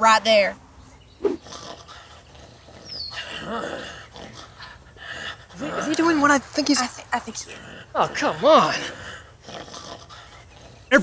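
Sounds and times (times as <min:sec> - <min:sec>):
guttural zombie-like snarl: 0:01.4 - 0:04.5.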